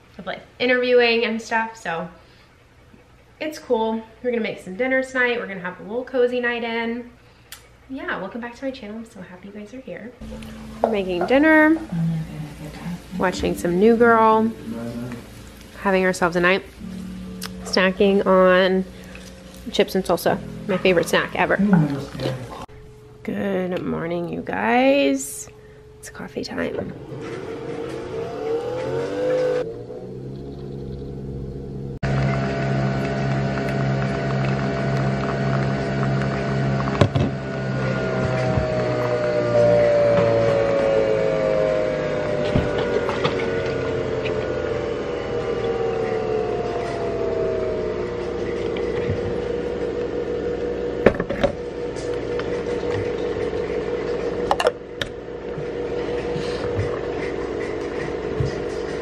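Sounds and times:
coffee machine motor whir: 26.5 - 59.0.

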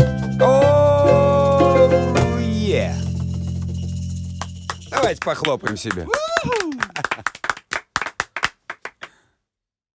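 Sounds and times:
people clapping: 4.4 - 9.2.

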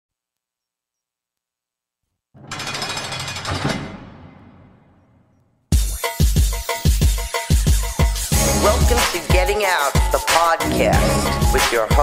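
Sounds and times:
rapid rattling sound effect: 2.4 - 5.1.

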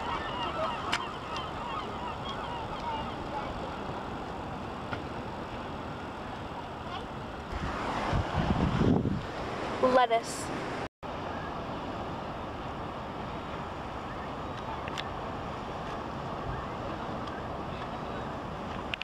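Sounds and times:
birds honking cries: 0.0 - 3.8
surf: 0.0 - 19.0
wind: 0.0 - 19.0.

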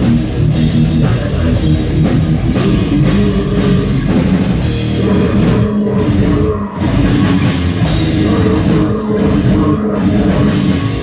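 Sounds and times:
bass guitar: 0.0 - 11.0
distorted electric guitars: 0.0 - 11.0
drum kit: 0.0 - 11.0.

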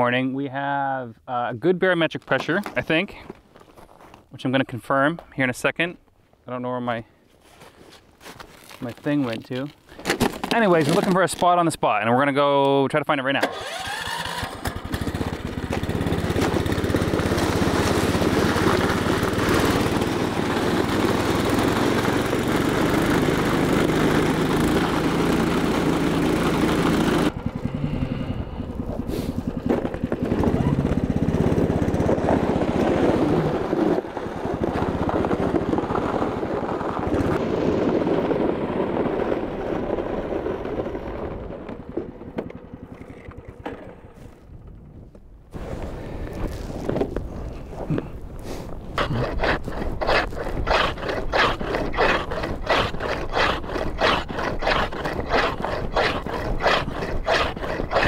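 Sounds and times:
snow machine engine running: 13.4 - 44.8, 47.9 - 58.0.

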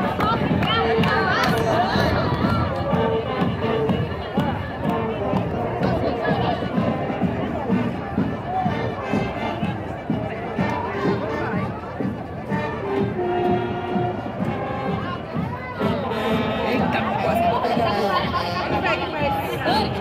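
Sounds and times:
crowd chatter: 0.0 - 20.0
held horn notes: 0.0 - 20.0
marching band drums: 0.0 - 20.0.

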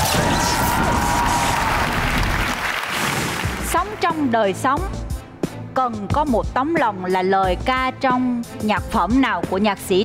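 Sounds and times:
studio audience applauding: 0.0 - 4.0.

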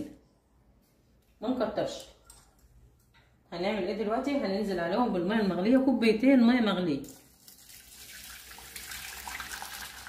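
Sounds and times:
boiling water pouring into pot: 7.3 - 10.0.

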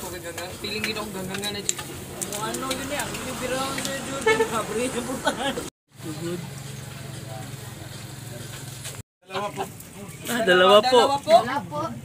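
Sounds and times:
people talking: 0.0 - 8.6.

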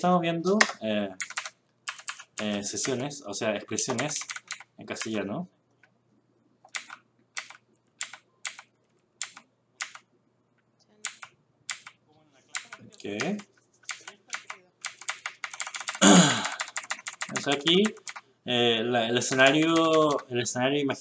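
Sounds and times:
computer keyboard keystrokes: 0.6 - 3.0, 3.7 - 5.2, 6.7 - 10.0, 11.0 - 18.2, 19.2 - 20.3.

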